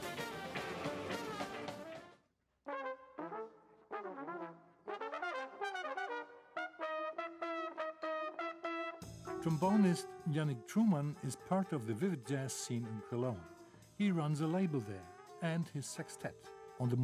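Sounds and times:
band music: 0.0s - 2.1s, 8.3s - 17.0s
trumpet and trombone jazz melody: 0.0s - 17.0s.

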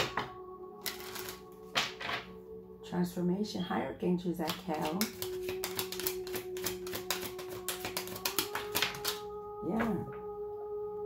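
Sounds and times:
background music: 0.0s - 11.0s
cards being shuffled: 0.8s - 2.2s, 4.4s - 10.0s.

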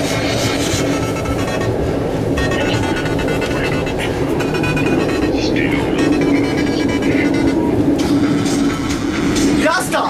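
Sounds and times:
music: 0.0s - 10.0s
steady low rumble: 0.0s - 10.0s
loud unintelligible voices: 0.1s - 10.0s.

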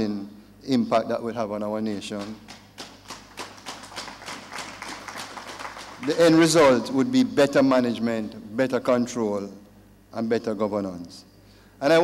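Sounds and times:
people clapping sparsely: 2.2s - 6.7s.

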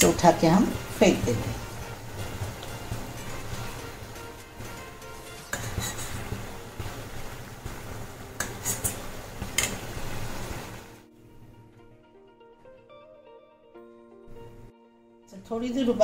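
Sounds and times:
liquid bubbling: 0.8s - 11.0s
spoon scraping steel pan: 5.0s - 6.6s, 8.4s - 9.8s.

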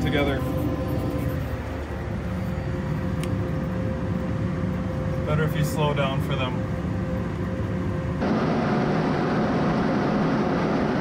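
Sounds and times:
engine and driveline rumble: 0.0s - 11.0s
faint steady whine: 0.0s - 11.0s.

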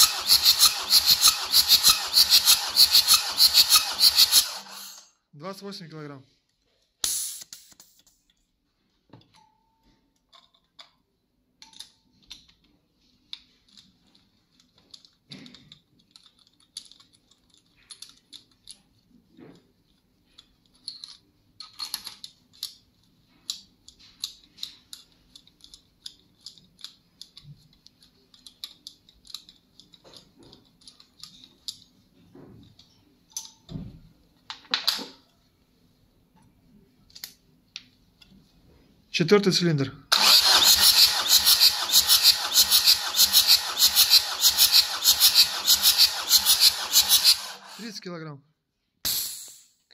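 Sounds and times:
metallic clicks of tools: 9.2s - 32.0s, 40.6s - 47.9s.

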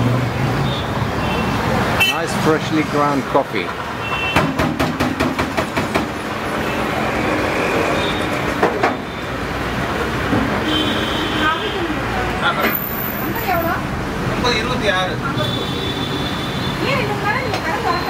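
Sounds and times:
street traffic engines: 0.0s - 18.0s
voices: 10.7s - 18.0s.

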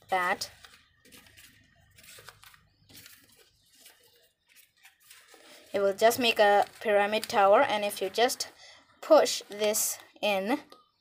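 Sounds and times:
paper rustling and tapping: 0.2s - 8.4s.

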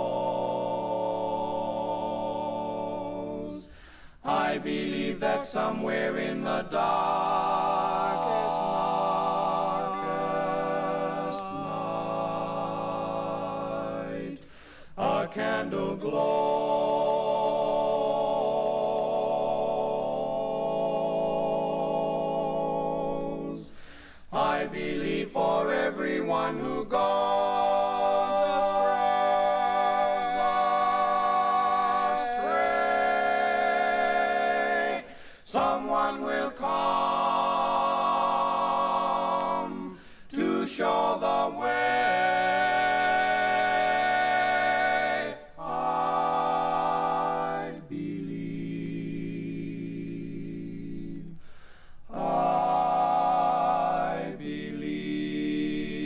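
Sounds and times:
male quartet singing a cappella: 0.0s - 56.0s.

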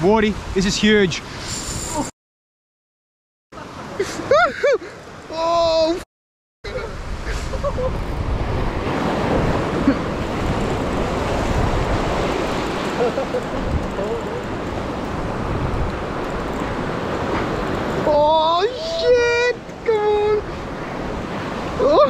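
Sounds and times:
wind buffeting microphone: 6.7s - 22.0s
ocean surf washing over rocks: 7.0s - 22.0s.

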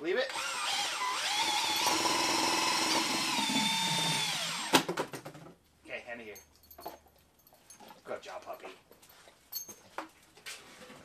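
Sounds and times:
cordless drill whine: 0.3s - 4.8s.

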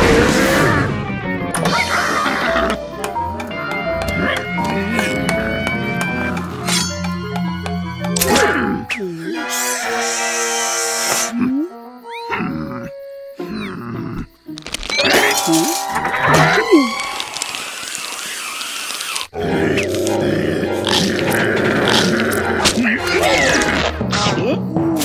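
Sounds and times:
cartoon music: 14.9s - 17.6s
comic sound effects: 14.9s - 17.7s.

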